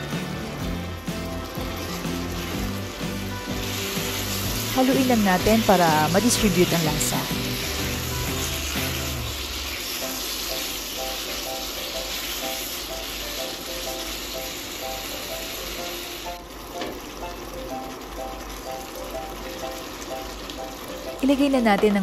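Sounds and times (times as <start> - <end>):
meat sizzling in a wok: 0.0 - 22.0
spatula stirring in a wok: 1.1 - 16.0.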